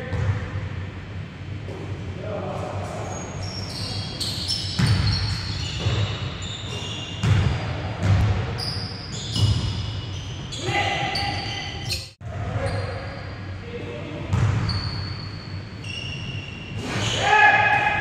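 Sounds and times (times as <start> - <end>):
basketball bouncing: 0.0 - 0.5, 4.7 - 6.2, 7.2 - 8.5, 14.3 - 14.7
sneakers squeaking: 0.0 - 0.5, 2.6 - 13.5, 14.3 - 18.0
basketball bouncing on wooden floor: 7.2 - 8.4.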